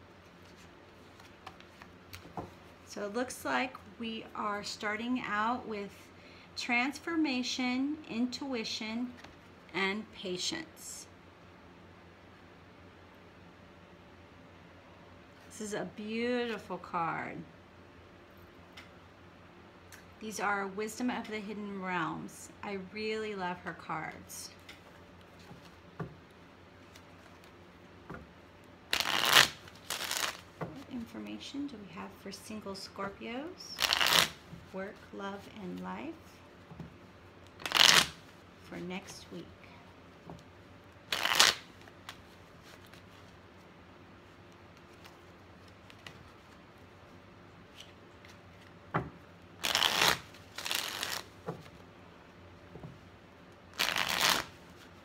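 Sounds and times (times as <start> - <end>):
cards shuffling: 0.3 - 2.7, 28.9 - 31.1, 33.8 - 34.6, 37.4 - 38.4, 41.1 - 43.4, 49.6 - 51.8, 53.7 - 55.0.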